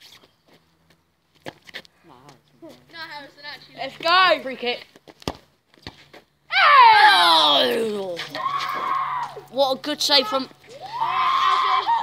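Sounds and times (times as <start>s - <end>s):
players shouting: 6.5s - 12.0s.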